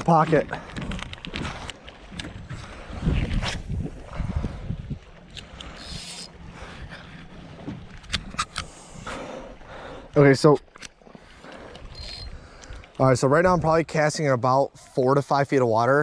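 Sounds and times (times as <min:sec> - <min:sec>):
fishing reel clicks: 0:05.3 - 0:06.3, 0:11.8 - 0:12.3.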